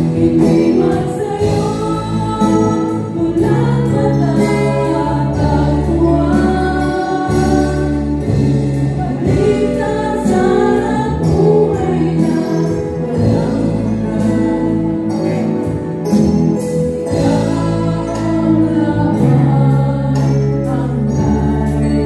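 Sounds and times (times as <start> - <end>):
women singing together: 0.0 - 15.7, 17.0 - 22.0
acoustic guitar: 0.0 - 22.0
electric bass line: 0.0 - 22.0
keyboard: 0.0 - 22.0.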